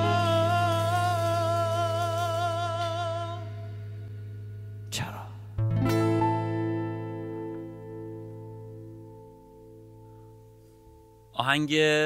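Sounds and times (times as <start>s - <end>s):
bass guitar and keyboard chord: 0.0s - 11.4s.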